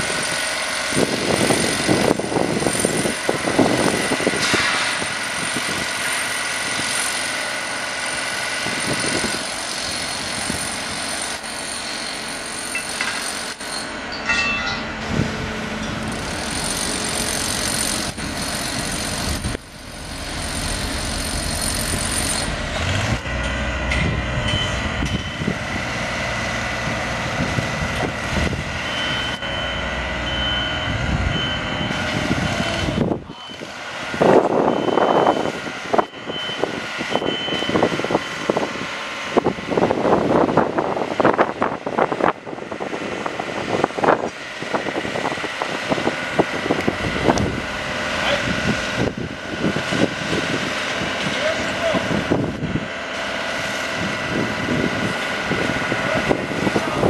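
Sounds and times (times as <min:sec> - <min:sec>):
machinery engine drone: 0:00.0 - 0:57.0
irregular surging noise: 0:15.4 - 0:23.3
faint high beep: 0:33.3 - 0:33.7.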